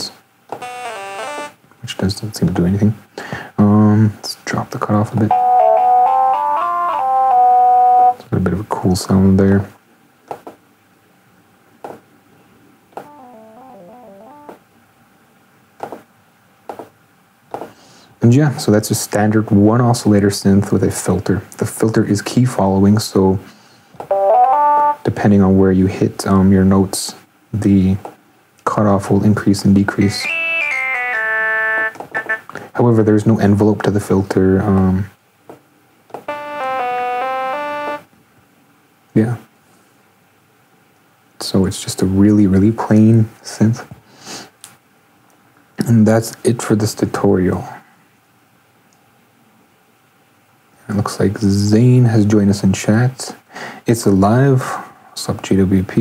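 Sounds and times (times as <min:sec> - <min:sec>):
synth notes stepping run: 0:13.0 - 0:14.6, 0:30.1 - 0:32.5, 0:36.3 - 0:38.0.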